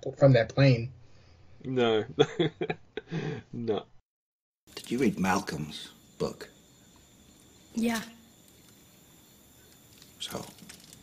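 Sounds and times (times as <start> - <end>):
person speaking: 4.7 - 6.4.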